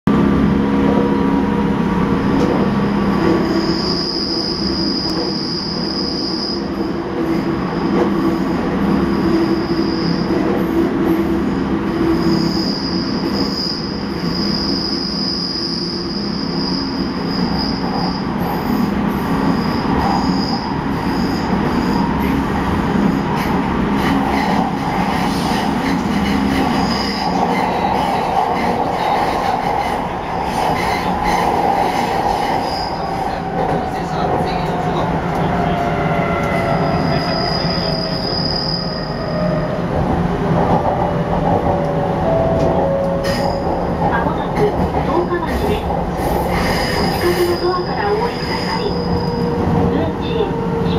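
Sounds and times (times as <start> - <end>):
train wheels rumbling on rail: 0.1 - 50.9
high wheel squeal: 3.3 - 7.0, 7.8 - 10.8, 12.1 - 22.3, 30.7 - 34.9, 35.6 - 39.8, 42.9 - 43.9, 46.2 - 50.9.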